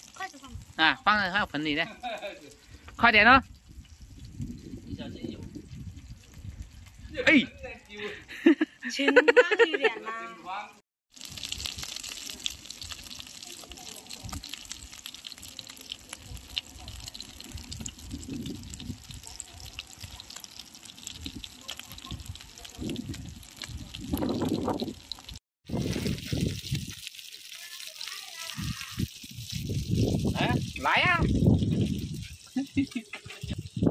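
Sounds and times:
fish frying in oil: 0.0s - 7.0s, 11.1s - 33.9s.

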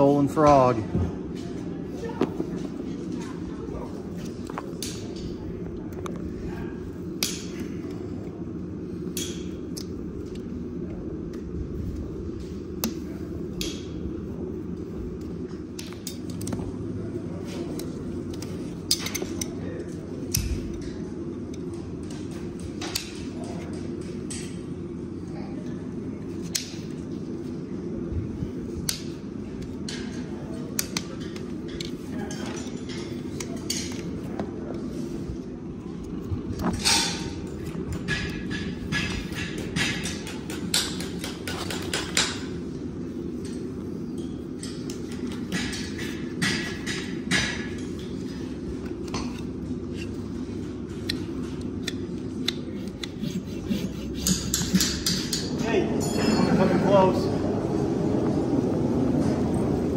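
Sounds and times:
low background murmur: 0.0s - 59.9s
hoof nippers snapping: 51.0s - 55.3s.

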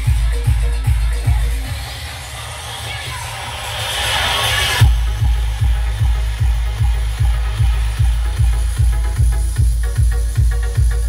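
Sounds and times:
heavy kick drum: 0.0s - 1.8s, 4.8s - 11.0s
electronic dance music: 0.0s - 11.0s
rising noise sweep: 1.9s - 8.8s.

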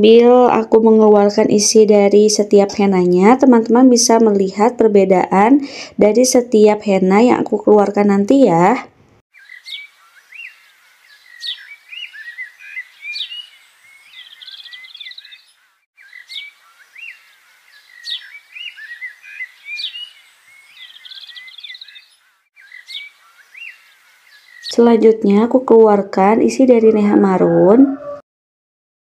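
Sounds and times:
birdsong chirps and trills: 9.3s - 28.2s.

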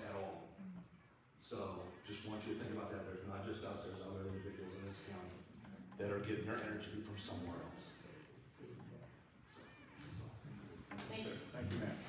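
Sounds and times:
faint squeak: 7.6s - 11.4s.

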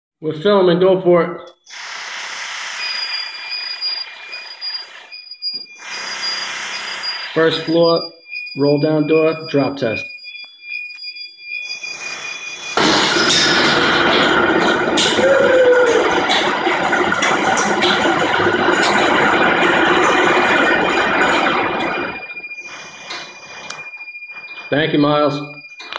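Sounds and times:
high-pitched alarm tone: 1.6s - 25.9s.

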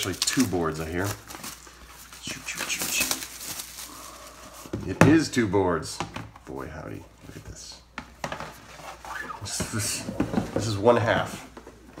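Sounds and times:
plastic wrap and cardboard rustling: 0.0s - 7.4s, 8.1s - 12.0s.

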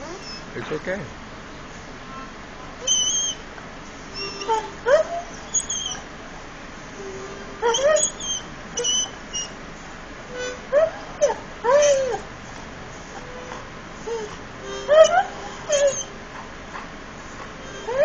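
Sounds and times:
dog squealing: 0.0s - 0.5s, 2.8s - 3.4s, 4.1s - 6.1s, 7.0s - 9.6s, 10.3s - 12.3s, 13.1s - 16.2s, 17.6s - 18.0s
dog whining and yowling: 0.0s - 0.5s, 2.8s - 3.4s, 4.1s - 6.1s, 7.0s - 9.6s, 10.4s - 12.3s, 13.1s - 16.2s, 17.6s - 18.0s.

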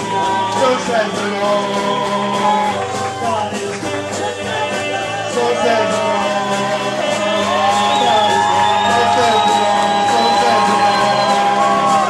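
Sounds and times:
guitars playing loudly: 0.0s - 12.0s
live rock band: 0.0s - 12.0s.

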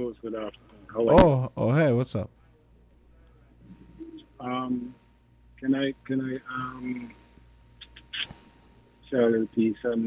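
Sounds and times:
telephone line hum and hiss: 0.0s - 10.0s.

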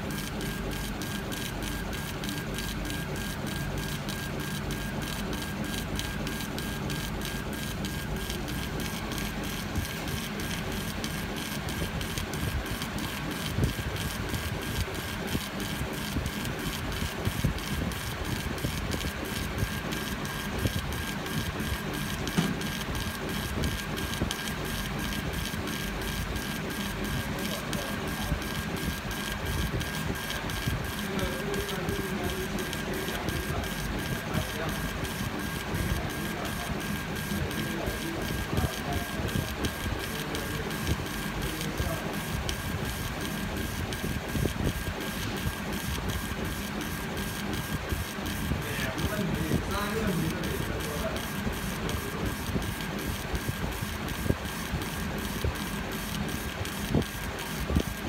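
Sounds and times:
laser engraver head scanning: 0.0s - 58.0s.

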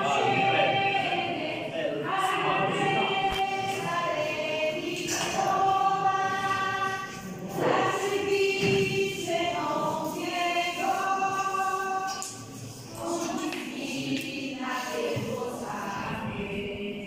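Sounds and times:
choir singing slow sacred song: 0.0s - 17.0s.

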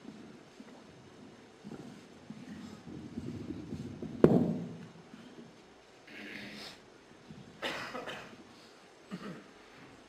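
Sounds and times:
microphone handling rumble: 1.7s - 5.0s
sharp knock on microphone: 4.2s - 4.7s.

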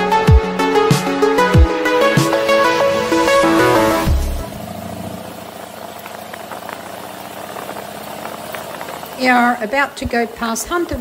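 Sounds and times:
electronic music bass drop: 0.0s - 4.7s
motorcycle engine droning: 0.0s - 11.0s
road noise: 0.0s - 11.0s.

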